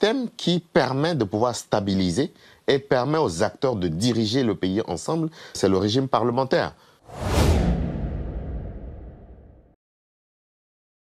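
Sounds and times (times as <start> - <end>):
whoosh with low rumble: 7.1 - 9.8.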